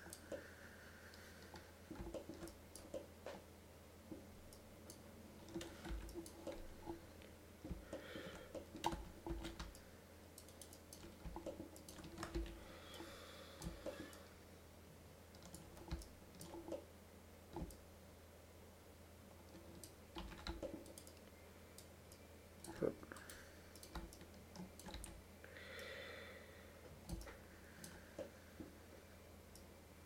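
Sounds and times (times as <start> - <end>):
computer mouse clicks: 0.0 - 0.4, 1.1 - 3.4, 4.5 - 7.0, 10.4 - 13.0, 15.3 - 16.9, 17.5 - 17.8, 19.5 - 25.2, 27.0 - 28.3
low electrical hum: 0.0 - 30.0.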